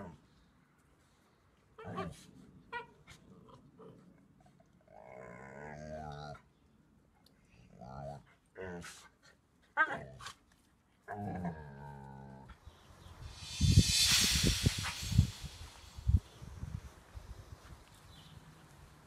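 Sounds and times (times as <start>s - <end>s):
dogs growling and grumbling: 4.9s - 6.5s, 11.1s - 12.6s
loud rushing noise with thumps: 13.2s - 16.3s.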